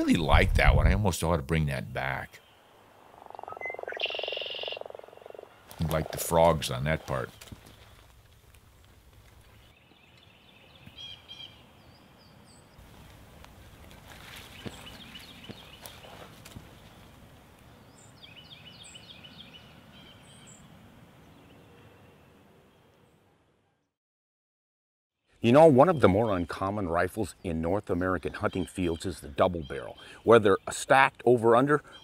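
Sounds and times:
sharp clicks: 7.1s - 8.6s.

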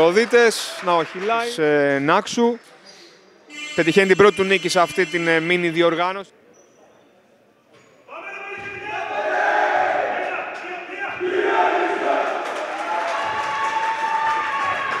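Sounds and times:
players shouting and chanting: 8.1s - 12.8s.

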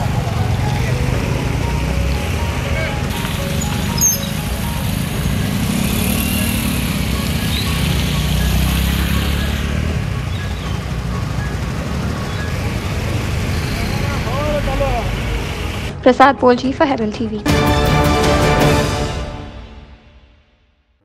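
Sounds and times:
vehicles passing through water: 0.0s - 16.0s
engine rumble: 0.0s - 17.6s
wavering tones: 0.9s - 14.4s.

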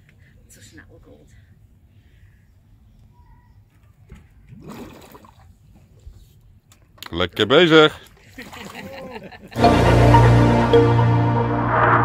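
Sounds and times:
water sloshing and splashing: 4.5s - 5.6s
low rumble: 11.2s - 12.0s.

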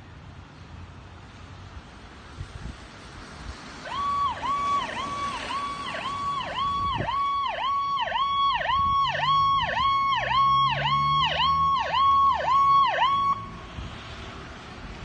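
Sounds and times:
emergency vehicle siren: 3.7s - 14.7s.

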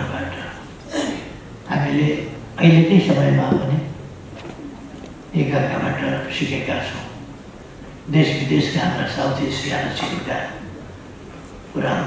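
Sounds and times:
man speaking into a microphone: 0.0s - 0.6s, 1.7s - 4.0s, 5.3s - 7.2s, 8.1s - 10.7s, 11.7s - 12.0s.

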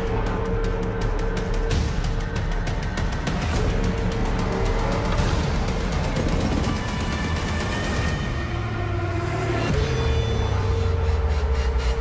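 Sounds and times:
deep low drone: 0.0s - 12.0s.

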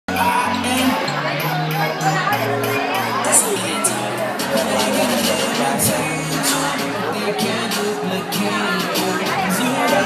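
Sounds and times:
crowd chatter: 0.1s - 10.0s
dance music over a loudspeaker: 0.1s - 10.0s.

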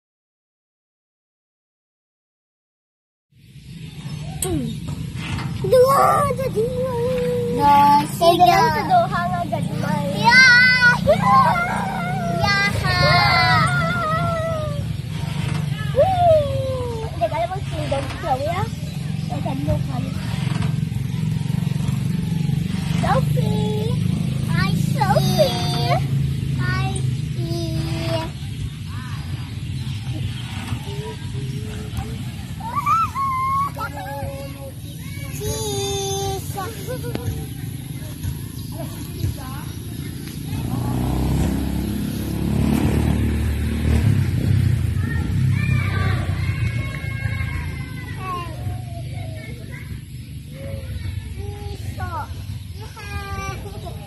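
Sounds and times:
motor engine running: 3.8s - 54.0s
children calling: 4.1s - 54.0s.

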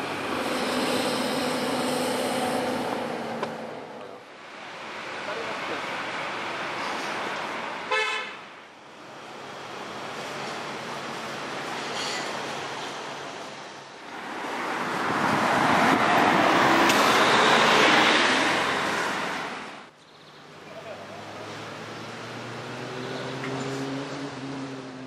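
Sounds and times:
street traffic noise: 0.0s - 25.0s
car horn toot: 7.9s - 8.4s.

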